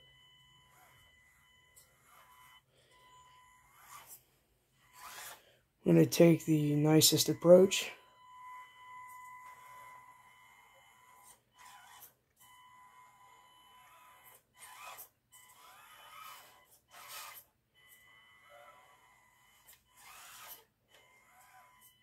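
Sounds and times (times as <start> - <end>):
toy car motor and gears: 0.6 - 5.5, 9.0 - 22.0.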